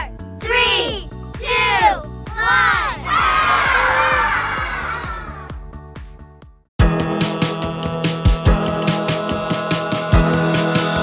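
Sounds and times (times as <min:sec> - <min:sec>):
children's music: 0:00.0 - 0:06.2, 0:06.8 - 0:11.0
children shouting: 0:01.5 - 0:05.5
group cheering: 0:02.3 - 0:05.6.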